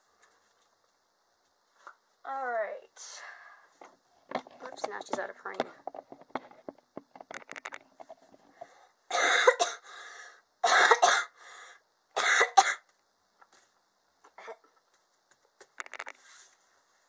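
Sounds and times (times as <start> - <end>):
person coughing: 10.6 - 11.4, 12.2 - 12.8.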